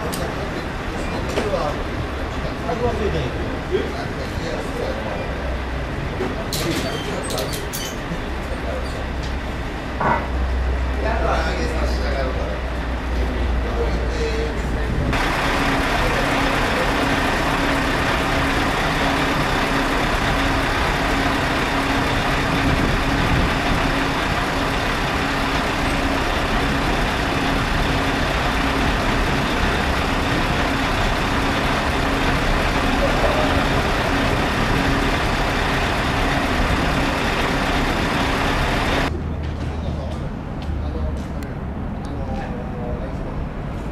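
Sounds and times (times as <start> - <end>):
engine running: 8.1 - 39.6
pulsing hum: 15.2 - 39.1.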